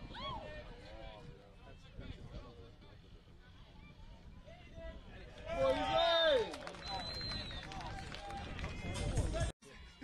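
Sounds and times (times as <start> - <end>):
people shouting and calling out: 0.0 - 2.2.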